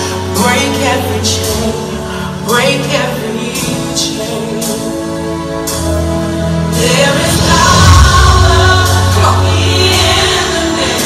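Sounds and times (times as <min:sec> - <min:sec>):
gospel choir singing: 0:00.0 - 0:11.0
steady bass line: 0:00.0 - 0:11.0.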